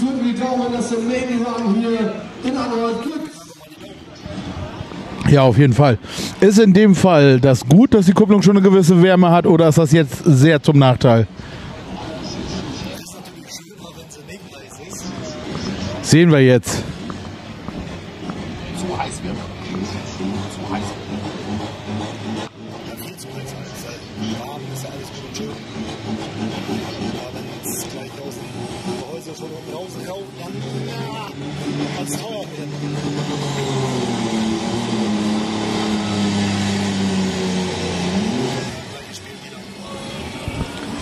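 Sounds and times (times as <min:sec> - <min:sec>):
diesel engine revving under load: 0:04.1 - 0:41.0.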